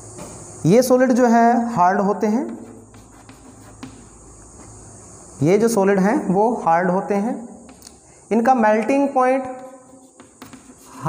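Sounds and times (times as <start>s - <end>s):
chalk scratching on blackboard: 2.4s - 4.9s, 9.4s - 11.0s.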